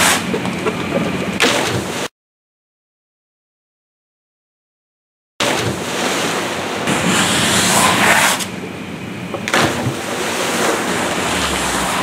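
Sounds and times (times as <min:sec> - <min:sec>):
water splashing in pool: 0:09.5 - 0:12.0.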